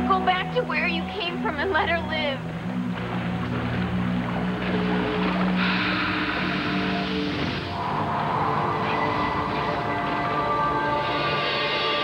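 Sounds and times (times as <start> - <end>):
sustained synthesizer notes: 0.0 - 12.0.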